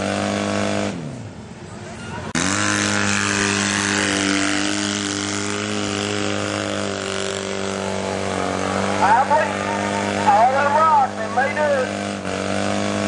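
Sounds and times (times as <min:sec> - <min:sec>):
off-road vehicle engine running: 0:00.0 - 0:13.0.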